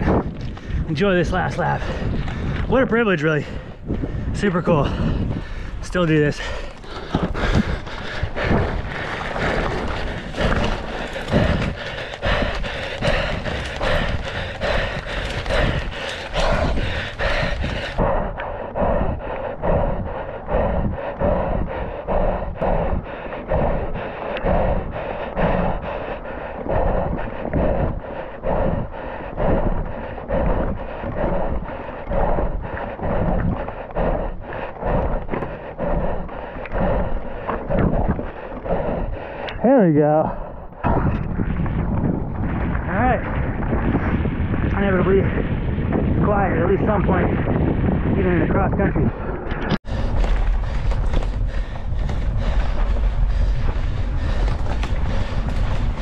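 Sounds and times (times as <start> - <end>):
person breathing hard: 0.0 - 2.7, 3.3 - 39.6, 40.2 - 40.9, 49.0 - 56.0
wind on microphone: 0.0 - 56.0
bike rattling over trail: 5.6 - 18.0, 49.8 - 56.0.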